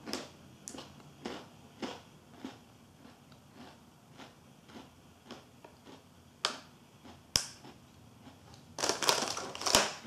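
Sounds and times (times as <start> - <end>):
plastic wrapper crackles: 8.8 - 10.0
plastic wrapper crinkling: 8.8 - 10.0
wrapper tearing snap: 8.8 - 10.0.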